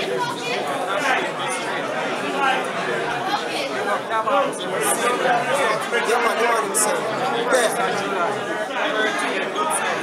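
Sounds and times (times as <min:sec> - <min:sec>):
several voices talking at once: 0:00.0 - 0:10.0.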